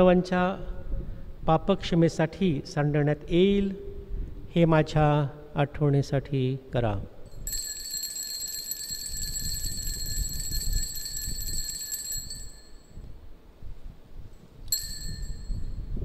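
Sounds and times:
altar bells ringing: 7.4s - 13.0s, 14.7s - 15.9s.

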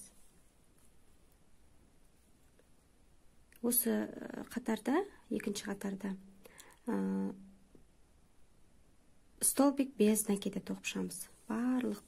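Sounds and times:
woman's voice: 3.6s - 6.2s, 6.8s - 7.4s, 9.4s - 12.0s.

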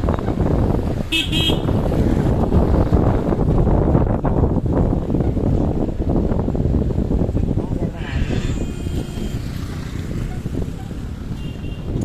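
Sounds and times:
car driving on road: 0.0s - 12.0s
vehicle horn toot: 1.1s - 1.8s, 11.4s - 12.0s.

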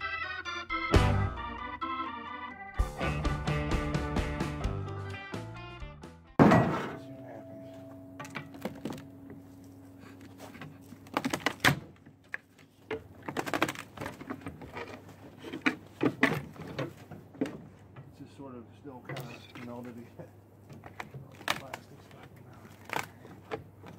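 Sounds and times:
organ music: 0.0s - 11.0s
loud thump: 6.4s - 7.0s
hand tools clanking on metal: 6.4s - 10.8s, 19.0s - 20.0s.

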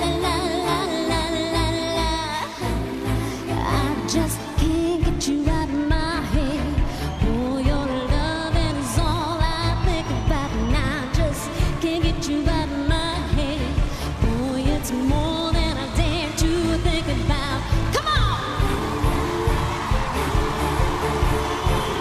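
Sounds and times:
electronic dance-pop backing track: 0.0s - 22.0s
woman singing pop song: 0.0s - 22.0s.

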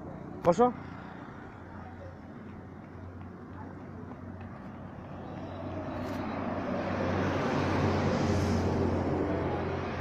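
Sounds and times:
motor vehicle approaching: 0.0s - 10.0s.

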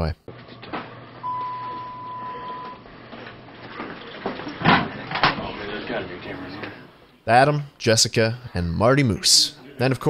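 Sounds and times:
steady electronic beep: 1.2s - 2.8s.

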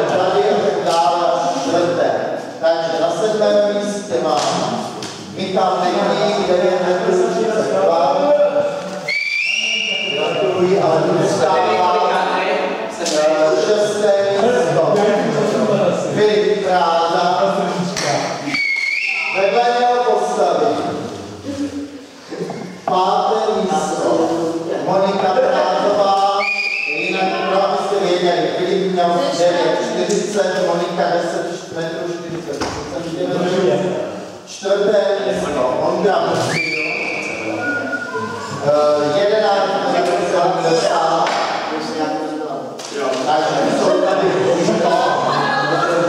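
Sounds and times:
man speaking: 0.0s - 9.1s, 10.0s - 18.6s, 19.2s - 46.0s
children chattering in echoing gym: 0.0s - 46.0s
high whistled note: 9.0s - 10.6s, 18.5s - 19.4s, 26.4s - 27.3s, 36.4s - 38.8s.

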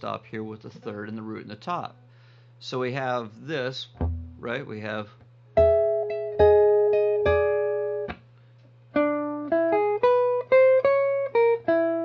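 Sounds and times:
steady low hum: 0.0s - 10.8s.

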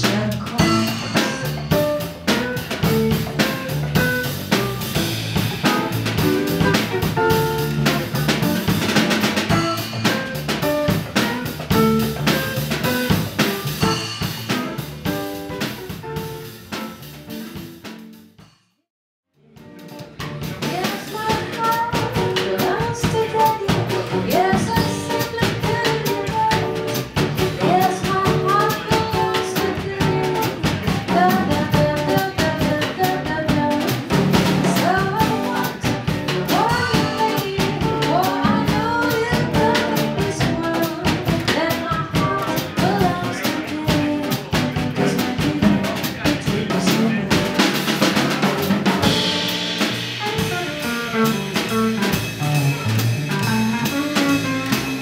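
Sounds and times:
jazz band playing swing: 0.0s - 18.4s, 19.4s - 55.0s.

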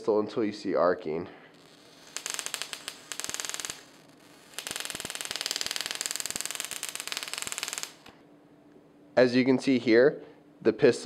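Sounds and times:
crackle of electric sparks: 1.5s - 8.2s.

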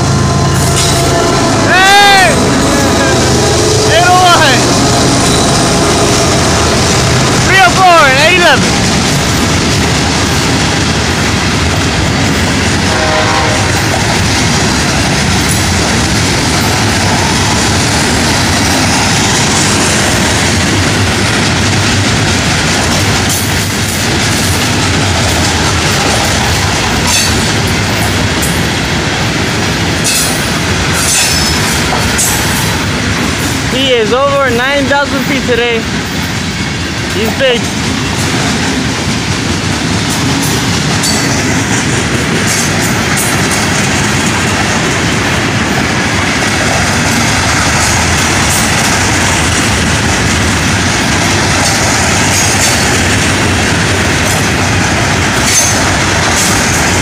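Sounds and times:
freight train rumble and rattle: 0.0s - 57.0s.

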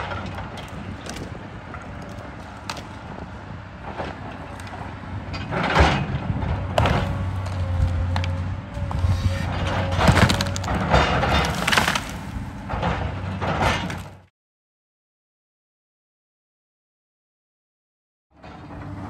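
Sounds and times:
wood cracking and splintering: 0.0s - 4.9s, 6.7s - 14.3s
excavator diesel engine under load: 0.0s - 14.3s, 18.3s - 19.0s.

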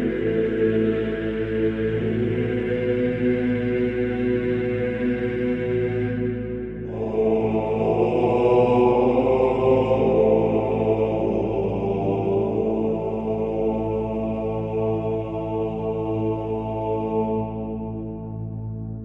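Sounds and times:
voices chanting sustained notes: 0.0s - 19.0s.

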